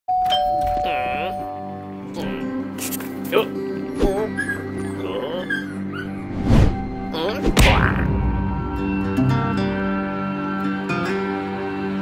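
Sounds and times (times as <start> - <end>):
doorbell ding-dong chime: 0.1 - 1.8.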